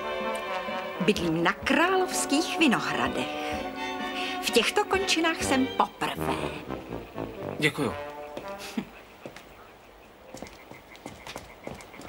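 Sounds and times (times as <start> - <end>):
footsteps on stone steps: 0.0 - 7.4, 8.0 - 12.0
pulsing night trill: 4.8 - 9.2.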